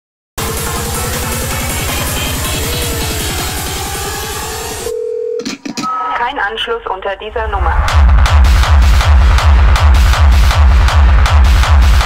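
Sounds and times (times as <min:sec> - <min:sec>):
techno track with kick drum: 0:00.4 - 0:04.6, 0:07.4 - 0:12.0
low telephone tone: 0:04.9 - 0:06.2.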